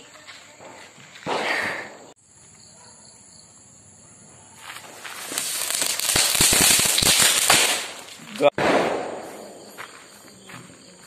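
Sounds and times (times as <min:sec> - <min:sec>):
sharp crackling pops: 0:00.6 - 0:02.2, 0:04.8 - 0:09.8
firework fountain hissing: 0:04.8 - 0:08.5.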